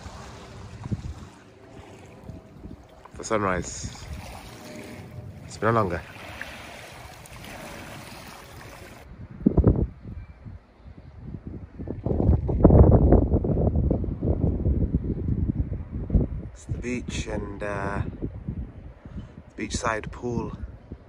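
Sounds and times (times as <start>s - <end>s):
sea lapping on pebble shore: 0.0s - 9.0s
wind buffeting microphone: 0.0s - 21.0s.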